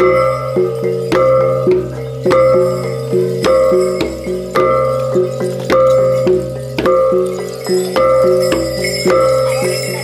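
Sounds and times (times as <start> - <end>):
gongs struck in rhythm: 0.0 - 10.0.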